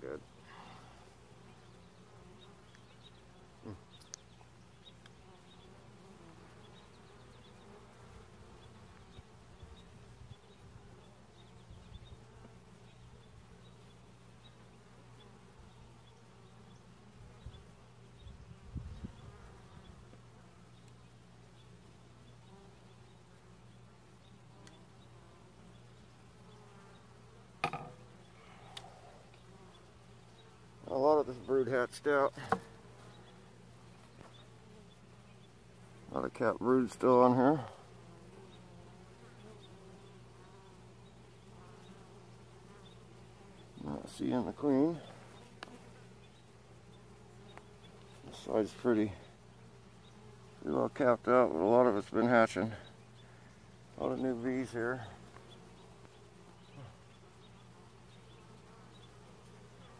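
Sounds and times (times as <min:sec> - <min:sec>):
honeybees buzzing: 0:00.0 - 0:59.9
wooden hive parts knocking: 0:27.6 - 0:28.0.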